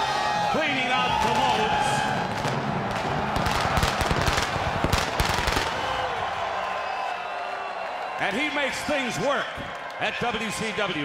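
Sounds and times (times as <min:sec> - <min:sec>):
loud crowd: 0:00.0 - 0:11.0.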